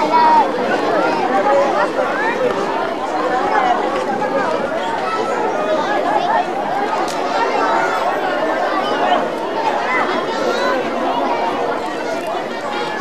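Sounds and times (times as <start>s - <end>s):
crowd chattering: 0.0s - 13.0s.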